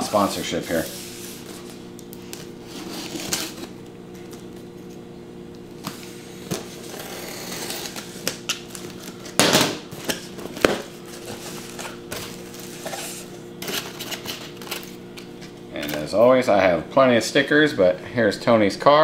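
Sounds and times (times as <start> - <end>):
steady low hum: 0.0 - 19.0
cardboard flaps scraping open: 2.6 - 3.8
knife slitting packing tape: 6.8 - 8.5.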